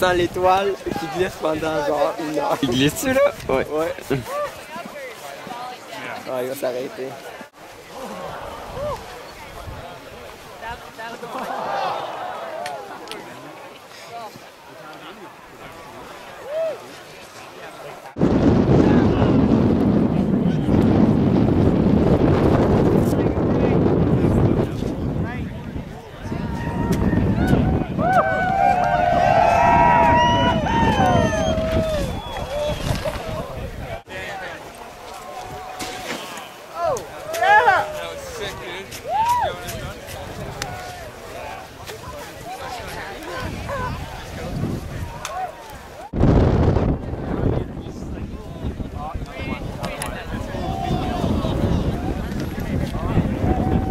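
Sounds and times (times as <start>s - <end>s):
faint voices: 0.0s - 21.9s, 22.9s - 46.2s, 46.8s - 53.9s
wind buffeting microphone: 18.2s - 34.1s, 37.8s - 53.9s.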